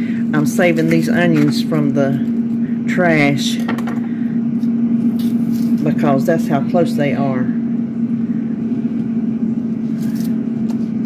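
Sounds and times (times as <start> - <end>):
air fryer fan humming: 0.0 - 11.0.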